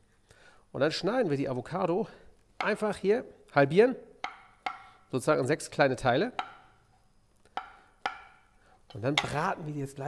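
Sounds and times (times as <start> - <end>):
knife tapping cutting board: 2.6 - 2.8, 4.2 - 4.9, 6.3 - 6.8, 7.5 - 8.4, 9.0 - 9.5.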